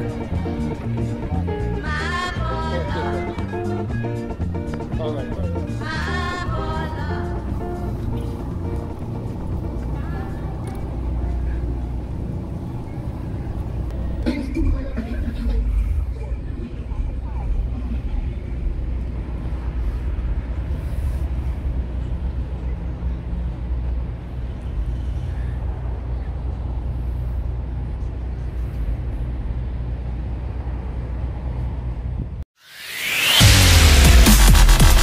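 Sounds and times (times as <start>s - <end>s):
outdoor low rumble: 0.0s - 32.4s.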